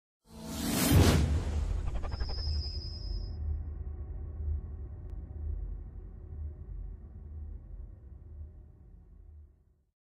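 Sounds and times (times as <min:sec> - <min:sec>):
whoosh sound effect: 0:00.5 - 0:03.0
low rumble: 0:01.0 - 0:09.6.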